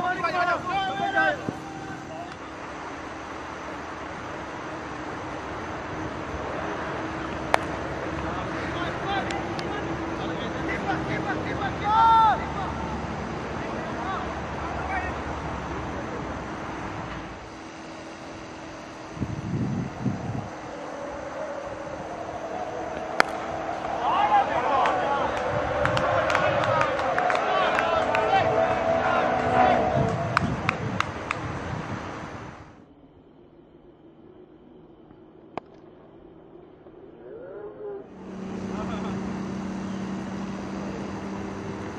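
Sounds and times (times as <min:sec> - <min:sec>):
crowd shouting and calling: 0:00.0 - 0:02.6, 0:07.5 - 0:16.2, 0:20.1 - 0:31.4
wind noise on microphone: 0:00.0 - 0:10.3, 0:18.6 - 0:32.8
sharp crack of bat: 0:07.5 - 0:07.8, 0:22.9 - 0:23.5.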